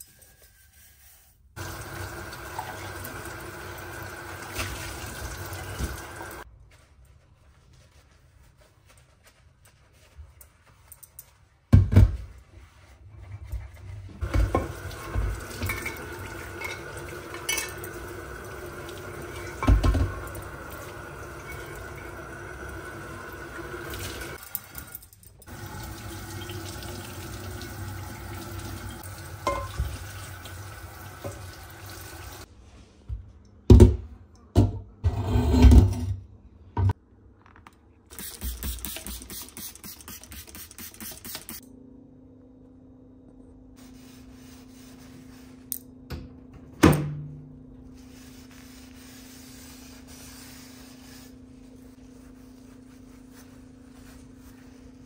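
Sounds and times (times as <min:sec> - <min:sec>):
dishes scrubbed and rinsed: 0:07.8 - 0:32.5
spray bottle squirts: 0:38.1 - 0:41.6.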